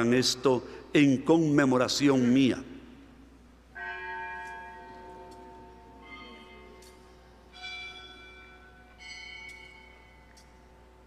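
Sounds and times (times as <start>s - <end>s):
altar bell ringing: 3.8s - 11.0s.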